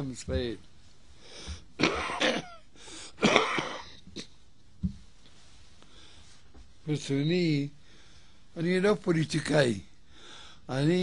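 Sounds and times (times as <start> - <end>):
man clearing his throat: 1.8 - 4.4.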